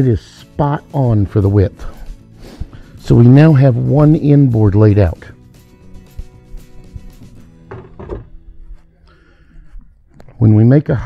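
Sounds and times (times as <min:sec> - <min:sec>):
quiet background music: 0:00.0 - 0:11.0
tools knocking on wooden workbench: 0:07.0 - 0:08.4.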